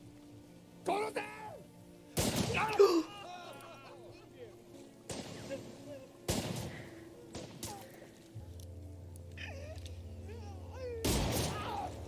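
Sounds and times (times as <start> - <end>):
low musical drone: 0.0 - 12.0.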